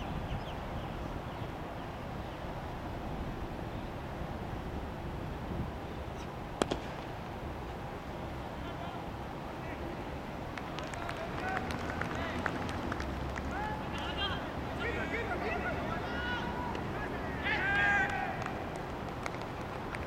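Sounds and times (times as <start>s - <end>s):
low outdoor rumble: 0.0s - 20.0s
distant players shouting: 10.6s - 19.1s.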